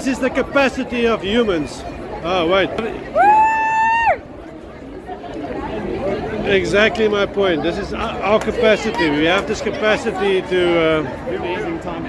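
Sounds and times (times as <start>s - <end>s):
crowd chatter: 0.0s - 12.0s
woman cheering: 3.2s - 4.2s.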